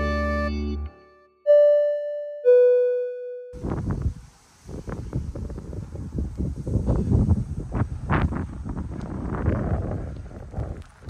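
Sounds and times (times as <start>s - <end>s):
keyboard jingle note: 0.0s - 3.6s
wind buffeting microphone: 3.6s - 11.0s.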